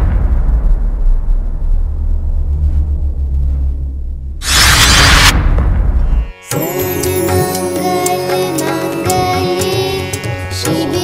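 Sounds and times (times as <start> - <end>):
deep cinematic boom rumble: 0.0 - 6.2.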